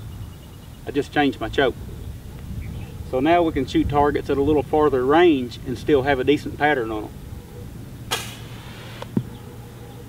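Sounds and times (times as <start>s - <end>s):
sharp click: 8.1s - 9.3s.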